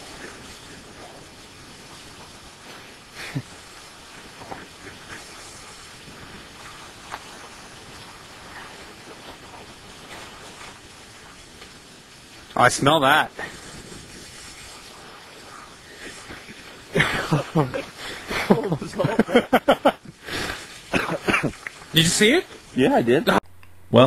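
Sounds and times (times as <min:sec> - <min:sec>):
faint steady hiss: 0:00.0 - 0:24.0.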